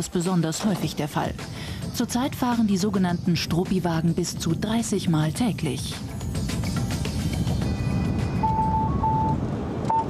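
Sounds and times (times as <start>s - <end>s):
van engine and road noise: 5.4s - 10.0s
mobile phone ringing: 7.8s - 10.0s.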